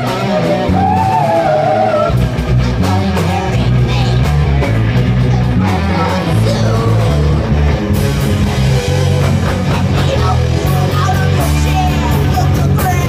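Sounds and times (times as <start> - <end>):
live rock band: 0.0 - 13.0.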